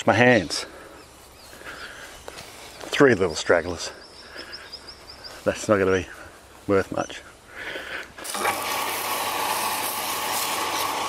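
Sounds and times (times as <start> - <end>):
running water rushing: 8.2 - 11.0.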